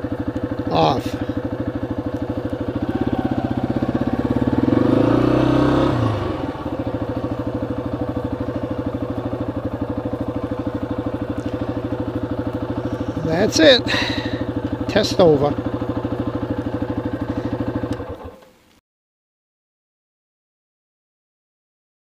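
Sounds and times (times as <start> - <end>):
motorcycle engine revving: 0.0 - 18.5.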